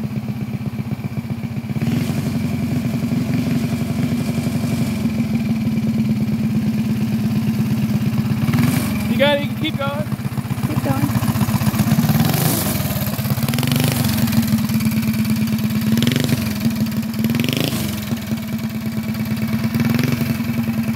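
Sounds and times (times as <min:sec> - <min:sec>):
small single-cylinder engine running: 0:00.0 - 0:20.9.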